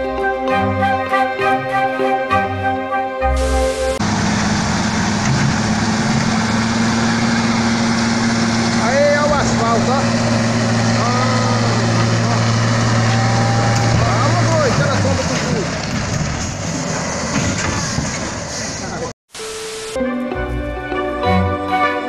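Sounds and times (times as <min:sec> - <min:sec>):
heavy truck engine running: 0:03.3 - 0:19.1
men calling out: 0:08.7 - 0:15.8.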